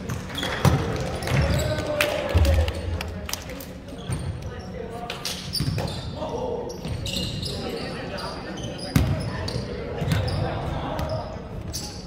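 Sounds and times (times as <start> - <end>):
players' voices echoing: 0.0 - 12.0
ball bouncing on wooden court: 8.9 - 9.2.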